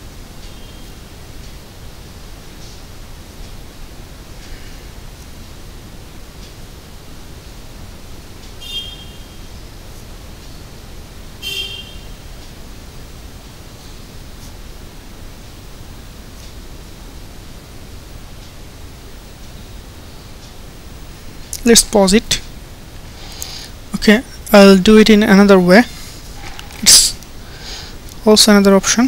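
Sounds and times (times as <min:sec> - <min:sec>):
microphone hiss: 0:00.0 - 0:29.0.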